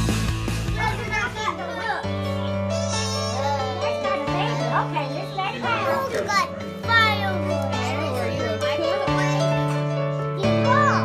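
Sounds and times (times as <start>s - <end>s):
background music: 0.0s - 11.0s
children shouting excitedly: 0.6s - 11.0s.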